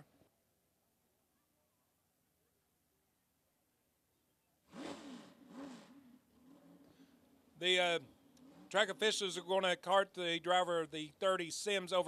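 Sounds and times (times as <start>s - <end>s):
engine revving: 4.7s - 9.4s.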